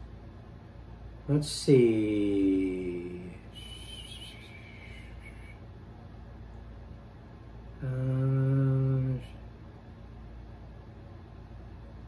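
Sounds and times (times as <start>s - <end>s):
man saying uhh: 1.5s - 5.6s, 7.8s - 9.4s.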